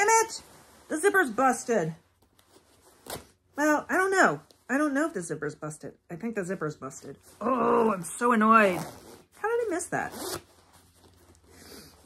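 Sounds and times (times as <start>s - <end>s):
zipper rasping: 7.4s - 12.0s.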